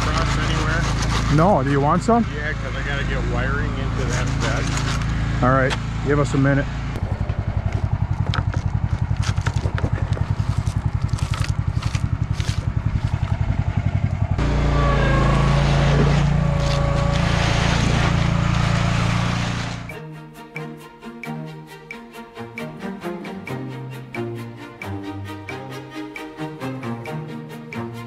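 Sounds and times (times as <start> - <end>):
concrete buggy engine running: 0.0 - 20.0
concrete dumping from hopper: 14.4 - 19.9
music: 19.9 - 28.0.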